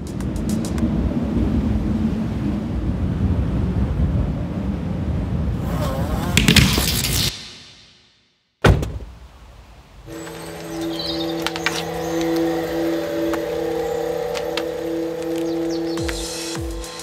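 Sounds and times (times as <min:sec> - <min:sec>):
held synth chord with pulsing note: 0:10.1 - 0:17.0.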